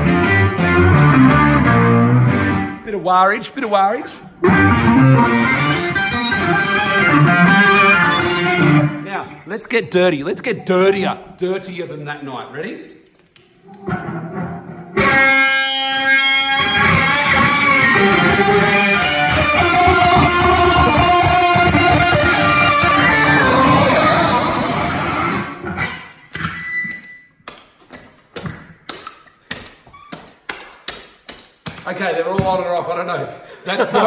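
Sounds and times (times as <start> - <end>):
distorted electric guitar: 0.0 - 2.8, 4.4 - 9.1, 13.6 - 27.1.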